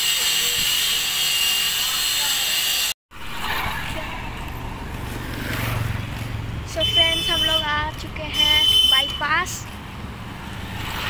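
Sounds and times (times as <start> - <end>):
motorbike and vehicle engines: 0.0 - 11.0.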